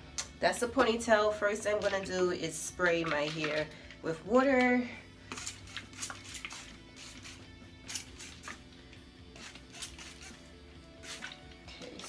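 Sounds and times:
faint background music: 0:00.0 - 0:12.0
spray bottle misting: 0:05.3 - 0:08.6, 0:09.4 - 0:11.6.

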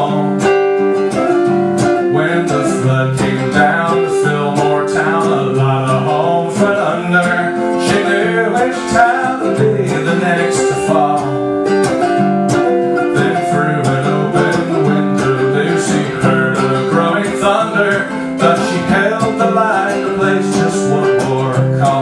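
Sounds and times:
guitar strumming chords: 0:00.0 - 0:22.0.

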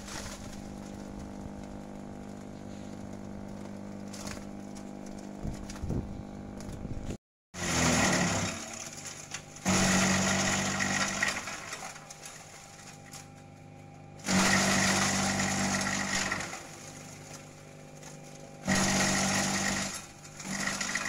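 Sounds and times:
branches being shredded: 0:00.0 - 0:06.7, 0:07.6 - 0:21.0
shredder motor humming: 0:00.0 - 0:21.0.

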